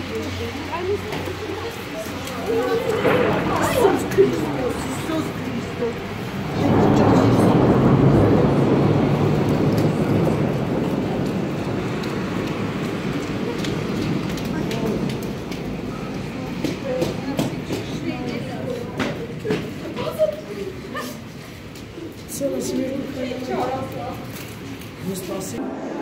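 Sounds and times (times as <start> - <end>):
heavy rain: 0.0 - 26.0
rumble of thunder: 2.5 - 18.7.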